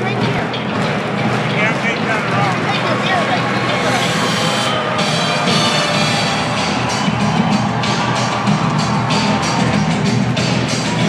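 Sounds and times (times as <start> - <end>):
crowd din: 0.0 - 11.0
music over public-address system: 0.0 - 11.0
voice over loudspeaker: 1.5 - 4.5.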